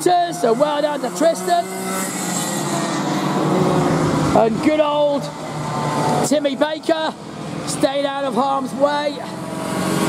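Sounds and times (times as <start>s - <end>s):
go-kart engine passing: 0.0s - 10.0s
broad rush of noise: 1.3s - 10.0s.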